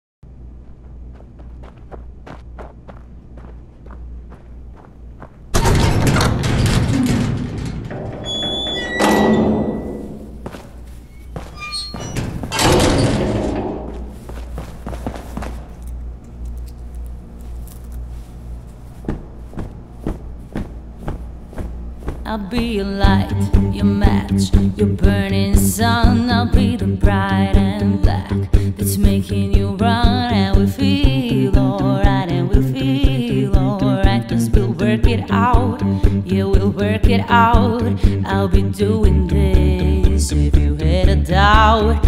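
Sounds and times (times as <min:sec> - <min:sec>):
low steady hum: 0:00.2 - 0:42.0
high squeals: 0:06.6 - 0:13.4
footsteps on hard floor: 0:10.2 - 0:12.5, 0:13.8 - 0:16.0, 0:17.4 - 0:23.2.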